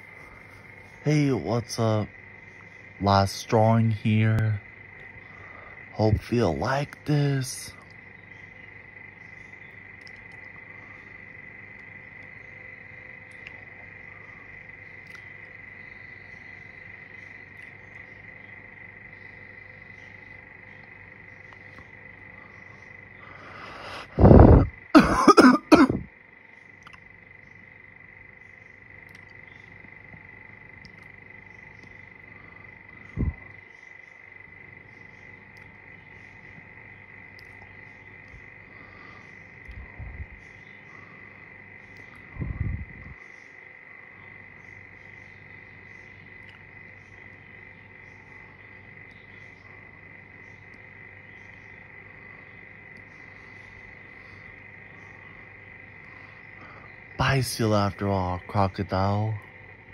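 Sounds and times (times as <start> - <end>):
high-pitched background hum: 0.0 - 59.9
person coughing: 25.0 - 26.1.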